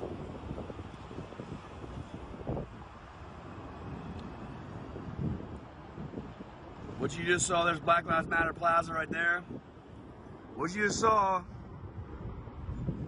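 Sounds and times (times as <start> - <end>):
wind on microphone: 0.0 - 13.0.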